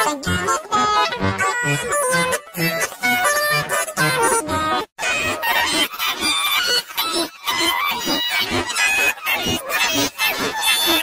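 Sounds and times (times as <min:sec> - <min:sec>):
distorted choppy voice and music: 0:00.0 - 0:06.2.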